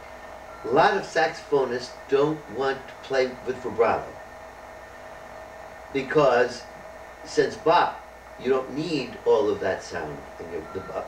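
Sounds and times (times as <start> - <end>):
steady low hum with hiss: 0.0 - 11.0.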